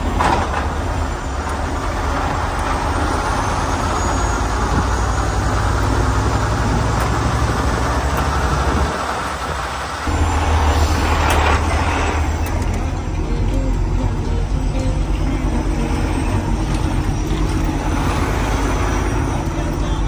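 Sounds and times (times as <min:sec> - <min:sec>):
truck diesel engine running: 0:00.0 - 0:20.0.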